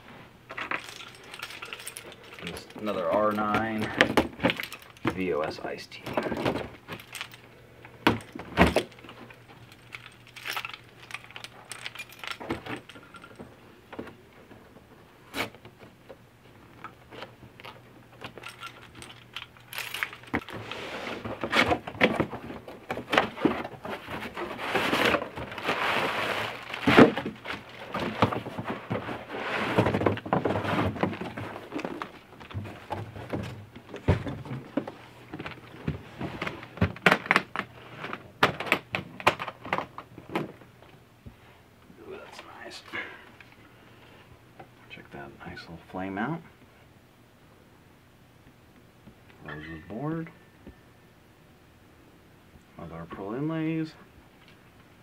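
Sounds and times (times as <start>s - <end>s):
cardboard rustling and scraping: 20.3s - 38.4s.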